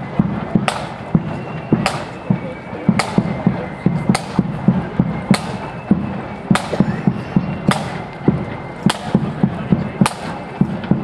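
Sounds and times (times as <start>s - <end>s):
marching drum thuds: 0.0s - 11.0s.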